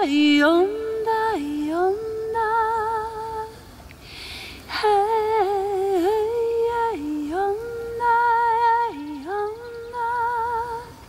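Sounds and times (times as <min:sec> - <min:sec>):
woman singing long notes: 0:00.0 - 0:03.6, 0:04.6 - 0:11.0.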